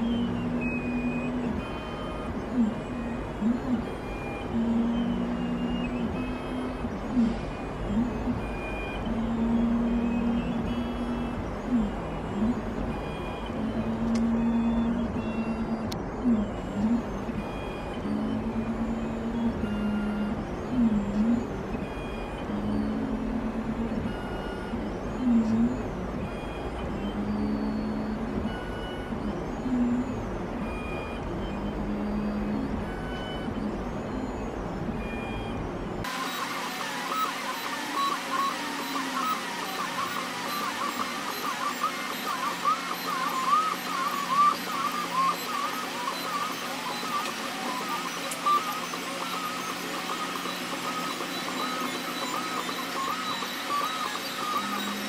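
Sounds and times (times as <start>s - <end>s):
steady hum: 0.0s - 55.0s
stepper motors whining: 0.0s - 55.0s.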